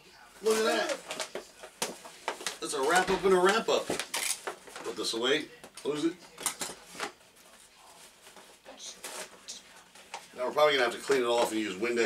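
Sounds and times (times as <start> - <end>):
cardboard packaging rustling: 0.4 - 5.4, 6.4 - 11.6.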